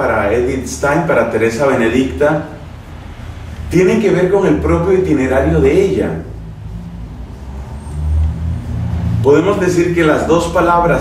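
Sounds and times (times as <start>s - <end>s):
low rumble: 1.0s - 10.2s.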